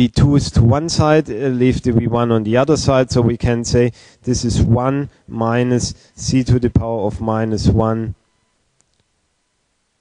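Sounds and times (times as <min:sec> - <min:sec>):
faint short clicks: 0:08.8 - 0:09.1.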